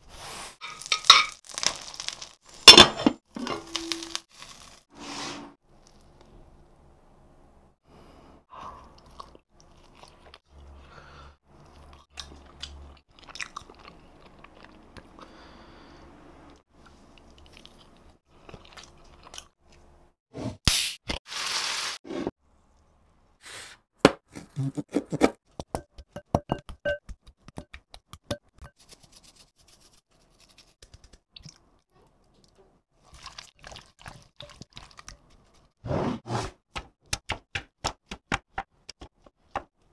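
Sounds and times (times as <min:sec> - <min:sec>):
food crunching and chewing: 0:00.8 - 0:02.5, 0:08.9 - 0:10.6, 0:11.5 - 0:15.2, 0:16.8 - 0:19.8, 0:30.4 - 0:35.8.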